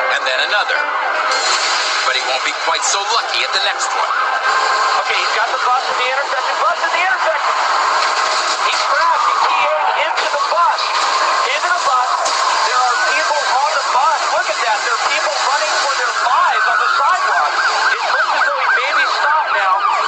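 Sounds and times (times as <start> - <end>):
man commentating excitedly: 0.0 - 1.0, 2.0 - 8.0, 8.6 - 20.0.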